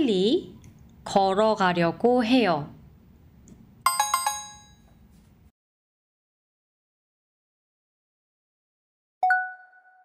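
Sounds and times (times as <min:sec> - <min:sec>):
electronic bell chime: 0:03.9 - 0:05.0, 0:09.2 - 0:10.0.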